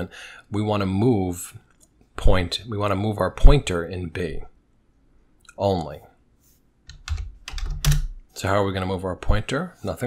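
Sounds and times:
computer keyboard typing: 6.9s - 8.2s.

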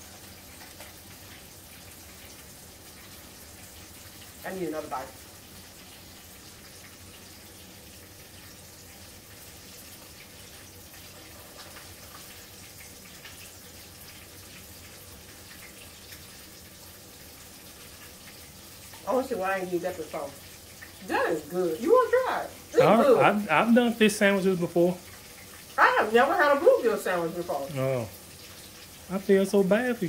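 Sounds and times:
faint room noise hiss: 0.0s - 30.0s.

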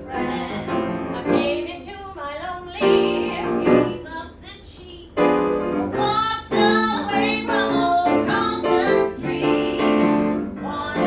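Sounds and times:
women singing: 0.0s - 5.0s, 5.7s - 11.0s
piano accompaniment: 0.0s - 11.0s.

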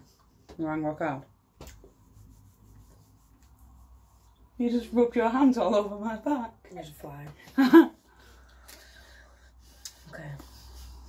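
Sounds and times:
hands rubbing on shirt fabric: 1.7s - 4.4s.

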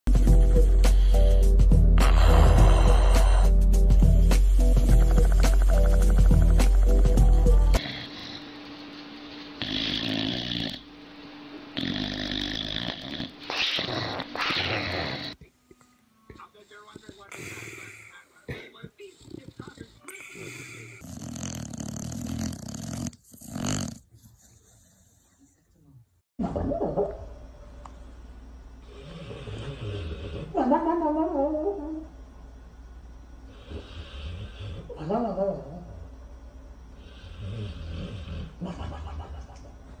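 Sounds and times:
dog snoring: 1.2s - 3.6s, 4.8s - 8.5s, 9.6s - 10.9s, 11.7s - 15.5s, 16.8s - 25.5s, 28.8s - 30.6s, 33.5s - 36.1s, 36.9s - 39.2s.

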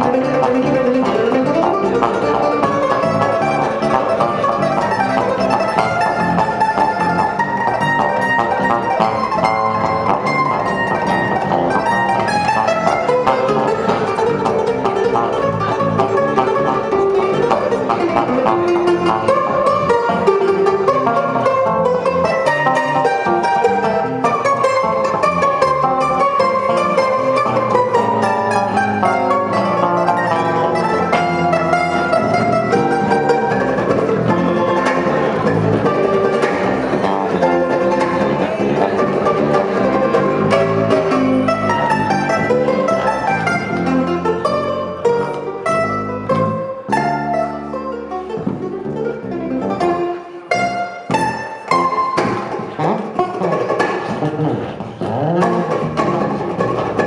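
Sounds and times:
electric bass line: 0.0s - 57.0s
mandolin plucked notes: 0.0s - 57.0s.

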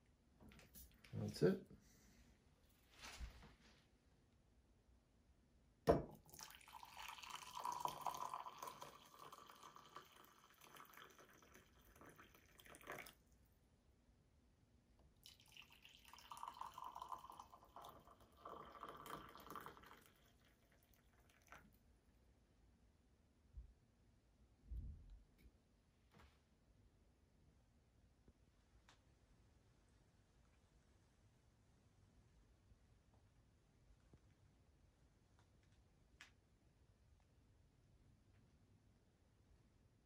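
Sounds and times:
coffee pouring into glass mugs: 5.9s - 13.3s, 15.2s - 21.8s.

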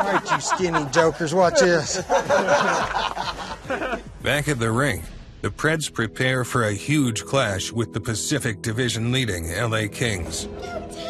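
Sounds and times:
men laughing: 0.0s - 4.2s.

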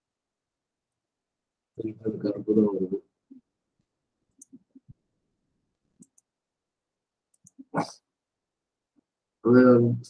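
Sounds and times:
faint computer mouse clicks: 4.3s - 4.7s, 6.0s - 6.3s, 7.3s - 7.6s.

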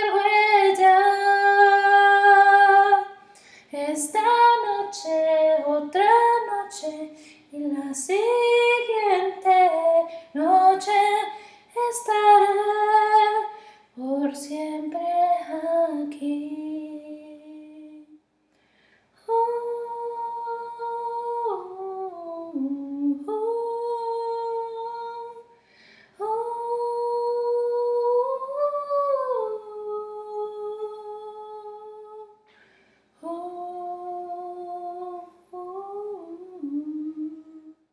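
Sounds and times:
woman singing: 0.0s - 18.2s, 19.2s - 25.5s, 26.2s - 32.4s, 33.2s - 37.9s.

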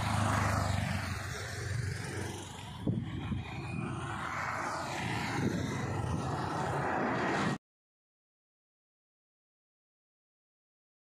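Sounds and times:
motorcycle engine passing: 0.0s - 7.6s
outdoor traffic noise: 0.0s - 7.6s.

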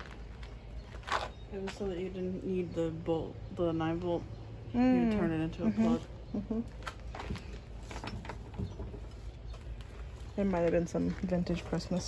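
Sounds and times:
items rustling: 6.7s - 12.0s.

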